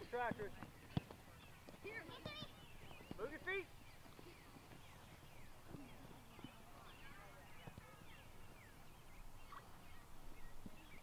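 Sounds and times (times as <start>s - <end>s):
birds chirping: 0.0s - 11.0s
faint distant voices: 0.0s - 11.0s.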